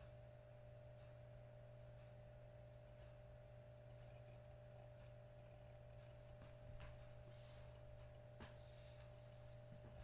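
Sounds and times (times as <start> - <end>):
low electrical hum: 0.0 - 10.0
faint clicks: 7.8 - 9.8.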